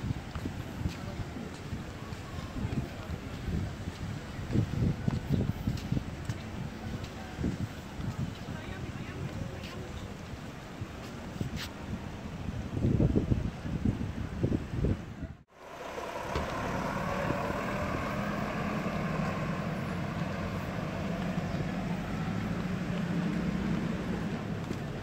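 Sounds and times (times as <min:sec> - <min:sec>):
wind buffeting microphone: 0:00.0 - 0:25.0
truck engine humming: 0:15.5 - 0:25.0.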